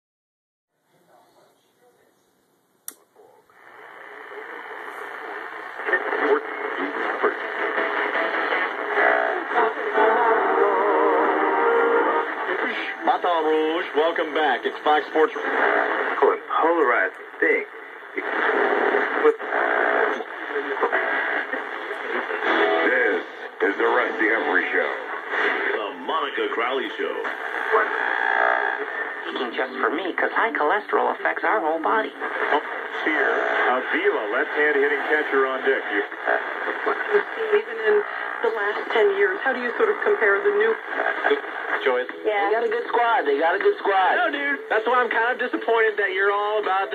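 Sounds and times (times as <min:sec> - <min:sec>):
radio station speech and music: 0:00.9 - 0:46.9
radio static: 0:03.2 - 0:46.9.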